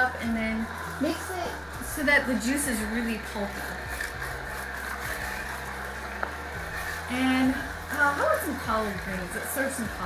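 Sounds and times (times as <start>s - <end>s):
juicer motor humming: 0.0s - 10.0s.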